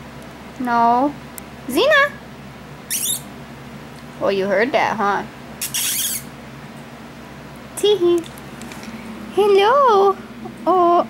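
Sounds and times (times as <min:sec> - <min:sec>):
kitten squeaking: 0:02.9 - 0:03.3, 0:05.6 - 0:06.3.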